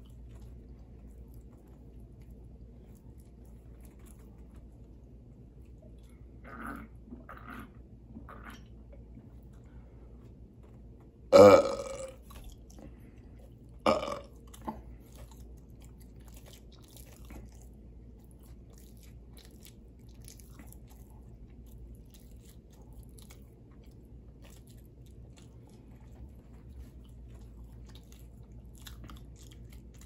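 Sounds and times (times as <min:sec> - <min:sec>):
soft chewing: 0:00.0 - 0:30.0
person burping: 0:11.3 - 0:12.2, 0:13.9 - 0:14.3.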